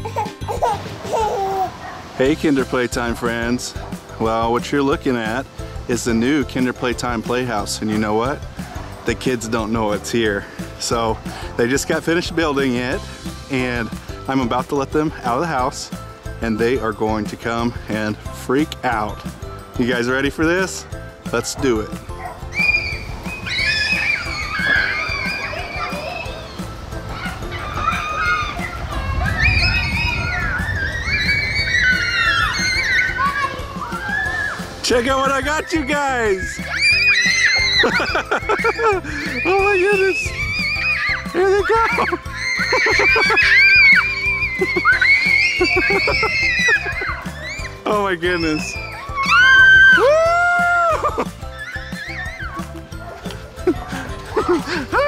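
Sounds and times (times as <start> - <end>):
children shrieking and squealing: 0.0 - 4.0, 21.3 - 55.0
background music: 0.0 - 55.0.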